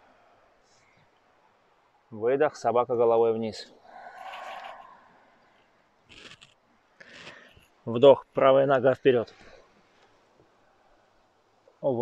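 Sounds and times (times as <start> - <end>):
slow exhale: 0.0 - 1.0, 3.8 - 5.7.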